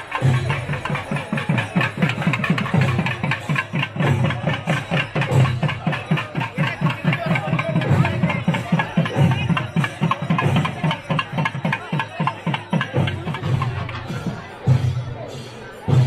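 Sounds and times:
drums beating fast rhythm: 0.0 - 16.0.

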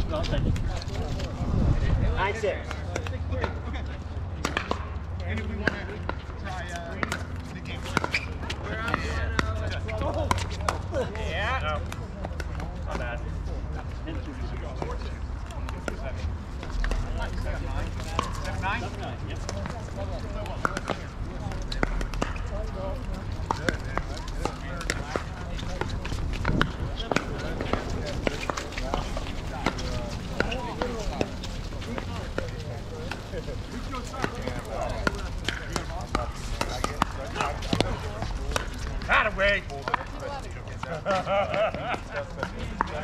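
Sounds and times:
players' voices: 0.0 - 43.0.

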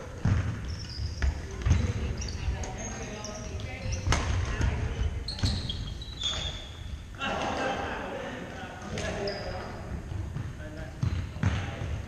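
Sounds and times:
shoe squeaks: 0.6 - 7.0, 9.1 - 9.8.

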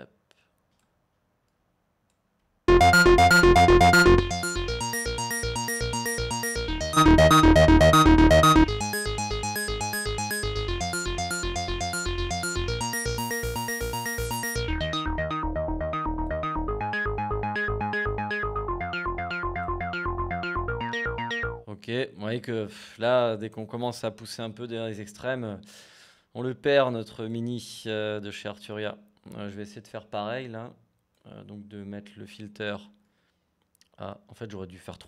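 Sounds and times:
synthesizer repeated notes: 2.7 - 21.6.

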